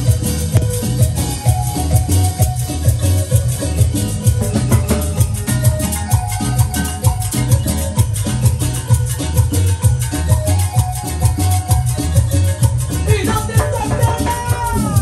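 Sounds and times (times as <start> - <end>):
bass: 0.0 - 15.0
conga drums: 0.0 - 15.0
electric keyboard: 0.0 - 15.0.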